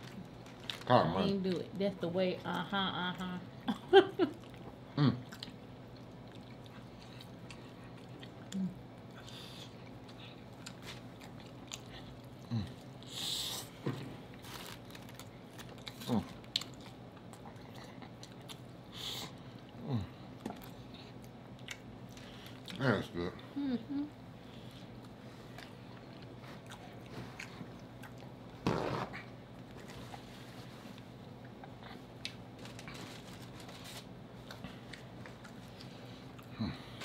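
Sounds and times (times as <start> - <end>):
person laughing: 2.8 - 4.4
chewing and biting food: 4.3 - 13.1, 14.3 - 23.1, 24.8 - 30.3, 31.0 - 37.0.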